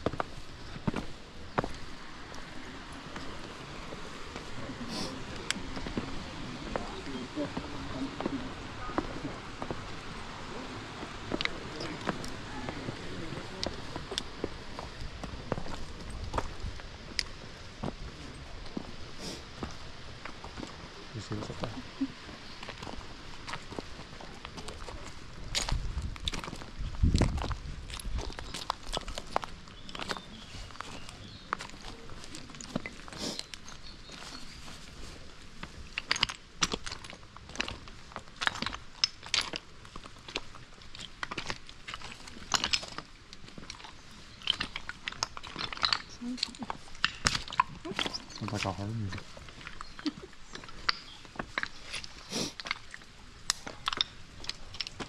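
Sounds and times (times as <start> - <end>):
steady hiss: 0.0 - 27.8, 28.6 - 55.0
footsteps on loose stones: 0.0 - 55.0.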